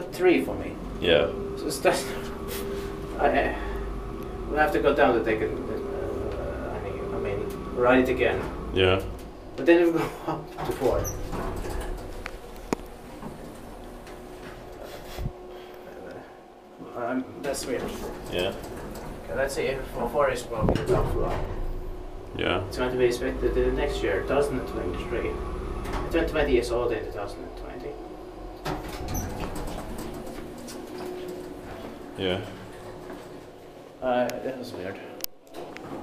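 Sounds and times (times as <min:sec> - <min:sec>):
faint elevator hum: 0:00.0 - 0:36.0.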